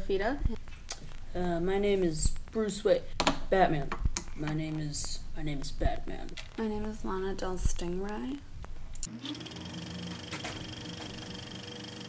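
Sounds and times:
low steady hum: 0.0s - 9.1s.

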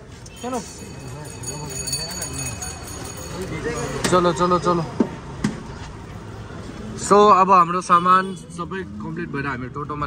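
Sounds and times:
quiet indistinct talking: 0.2s - 5.4s.

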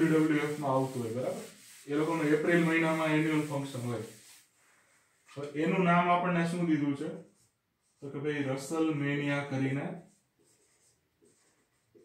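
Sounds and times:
marker writing on whiteboard: 10.0s - 12.0s.

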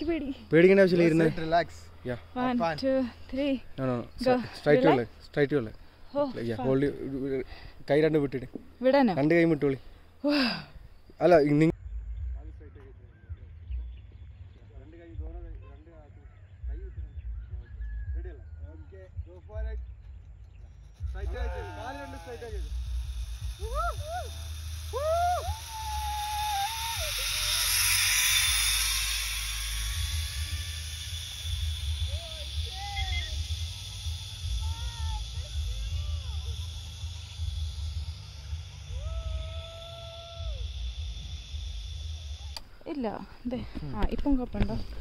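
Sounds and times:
zip-line pulleys hissing on cable: 20.8s - 43.3s
people whooping: 21.2s - 22.8s, 23.4s - 41.5s.

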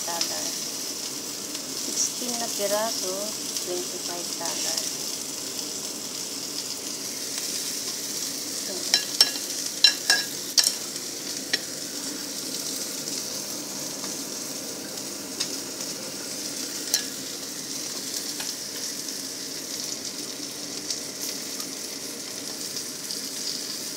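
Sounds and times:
fish sizzling in oil: 0.0s - 23.9s.

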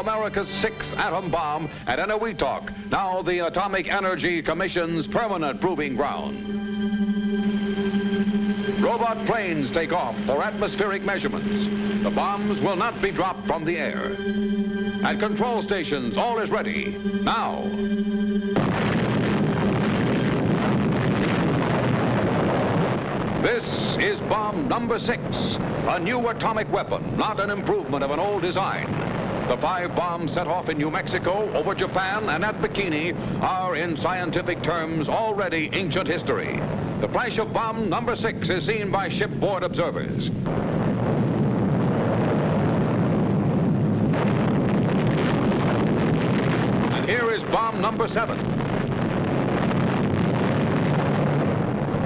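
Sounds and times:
explosion rumble: 0.0s - 52.0s
held musical chord: 5.0s - 20.1s.

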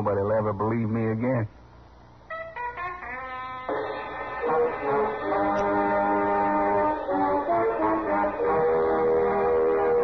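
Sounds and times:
orchestral brass chord: 2.6s - 10.0s.

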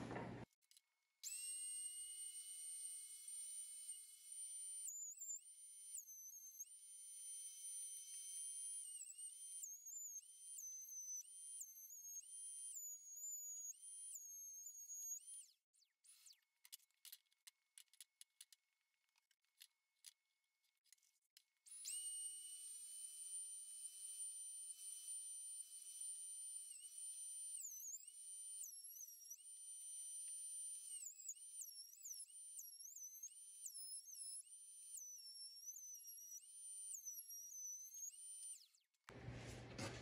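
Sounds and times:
thickness planer motor whine: 0.0s - 0.4s.

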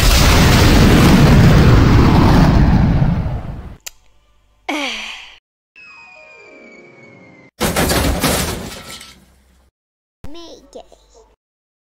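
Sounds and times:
rumbling explosion: 0.0s - 3.8s
cartoon vocal sigh: 4.7s - 5.4s.

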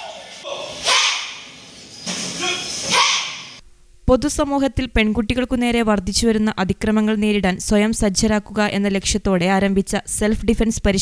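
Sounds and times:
girls yelling together: 2.9s - 3.5s.

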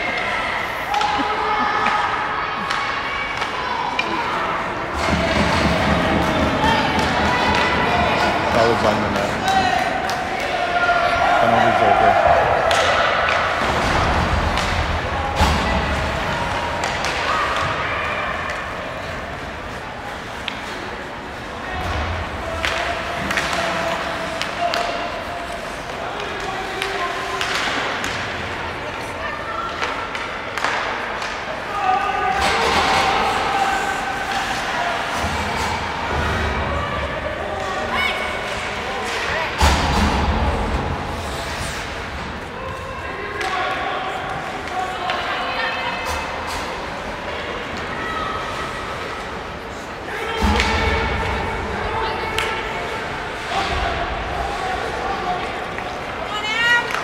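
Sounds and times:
spectators chatting: 0.0s - 57.0s.

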